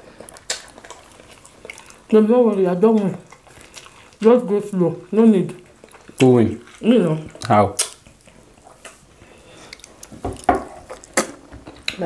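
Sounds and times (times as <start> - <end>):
wet mouth eating sounds: 0.0 - 12.0.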